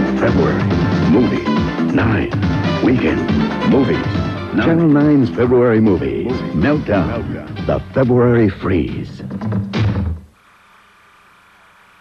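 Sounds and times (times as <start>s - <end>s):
promo voice and music: 0.0s - 9.4s
faint steady hum: 10.1s - 12.0s.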